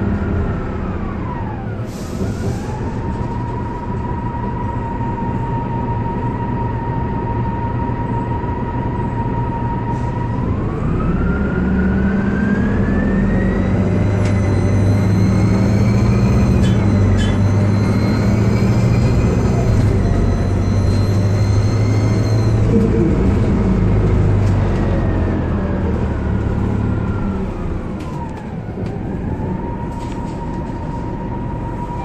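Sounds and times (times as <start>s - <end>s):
bus engine humming and whining: 0.0s - 32.0s.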